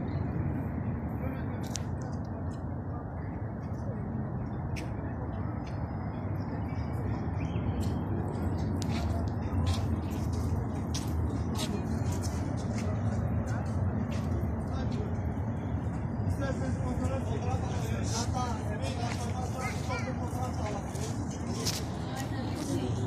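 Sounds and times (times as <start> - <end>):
indistinct voices of passers-by: 0.0 - 23.0
low background noise: 0.0 - 23.0
traffic: 0.0 - 23.0.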